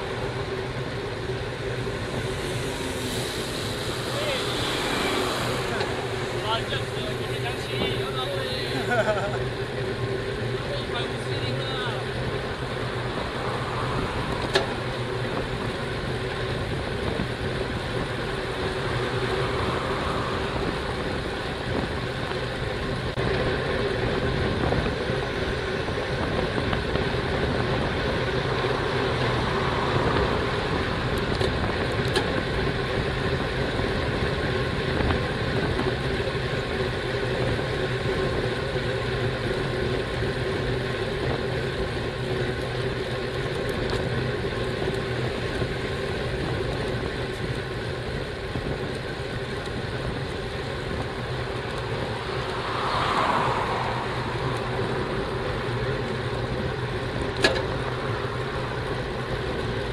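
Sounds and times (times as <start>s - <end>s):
bicycle road noise: 0.0s - 59.9s
motor traffic: 0.0s - 59.9s
wind rush: 1.7s - 8.8s, 13.0s - 15.7s, 18.9s - 22.1s, 50.8s - 55.2s.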